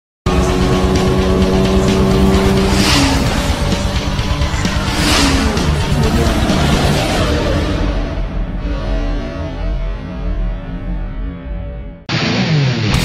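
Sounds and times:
sports car engine revving past: 0.3 - 9.4
music: 0.3 - 13.0.

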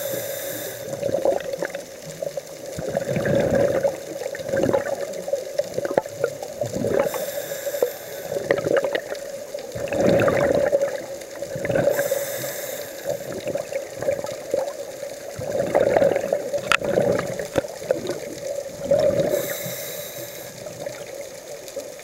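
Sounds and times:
regulator hissing inhalation: 0.0 - 1.2, 6.9 - 8.7, 11.8 - 13.6, 19.0 - 21.0
steady hum: 0.0 - 1.3, 6.9 - 8.8
bubbling exhalations: 0.0 - 1.8, 2.8 - 5.1, 5.7 - 14.8, 15.4 - 21.2.

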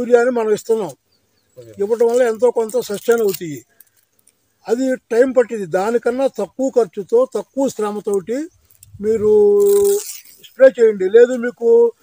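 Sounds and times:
man talking: 0.0 - 1.0, 1.6 - 3.7, 4.6 - 12.0
faint high rustle: 8.5 - 10.6.

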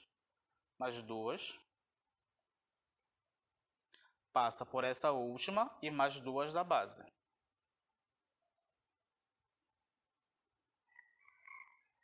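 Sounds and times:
faint animal call: 10.9 - 12.0.

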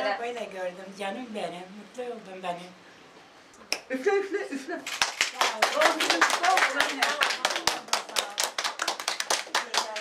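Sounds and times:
voices: 3.7 - 10.0
people clapping: 4.8 - 10.0.

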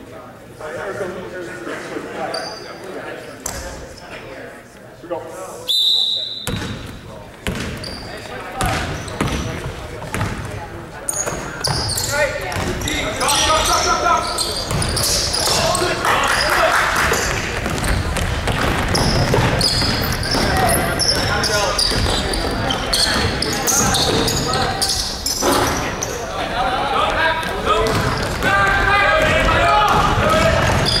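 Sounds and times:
voices echoing in a hall: 0.0 - 31.0
basketball bouncing on wooden floor: 6.5 - 7.8, 8.6 - 10.5, 17.6 - 21.3, 27.8 - 28.5.

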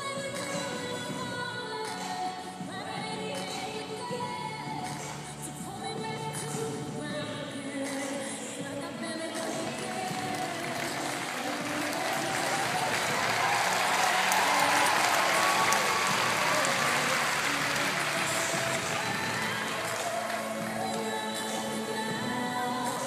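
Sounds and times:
music playing: 0.0 - 23.0
audience applauding: 9.6 - 22.0.

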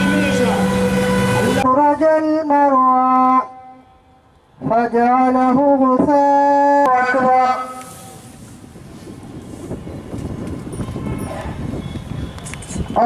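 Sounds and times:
man chanting a prayer: 1.4 - 3.8, 4.6 - 8.2.

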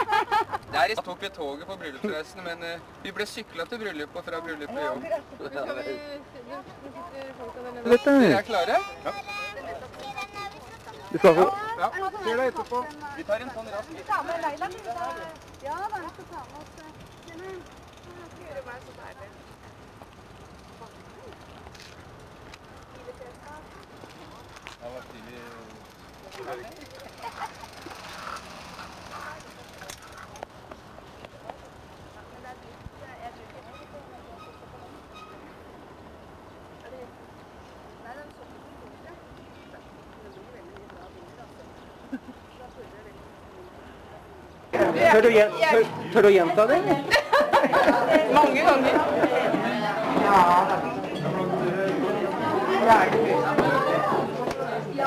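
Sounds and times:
crowd chatter: 3.2 - 35.8, 36.7 - 55.0
faint voices talking: 22.6 - 55.0.

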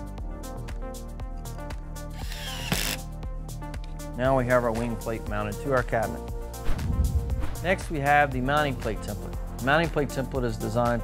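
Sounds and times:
cordless drill driving screw: 2.2 - 3.0.

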